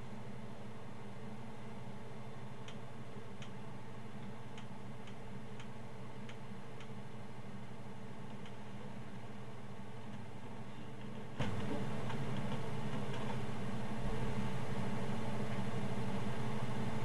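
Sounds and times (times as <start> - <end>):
low electrical hum: 0.0 - 17.0
light irregular ticks: 2.6 - 2.8, 4.2 - 7.0.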